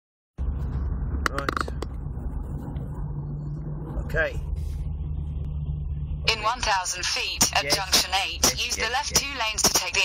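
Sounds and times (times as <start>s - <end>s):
car cabin rumble at speed: 0.4s - 10.0s.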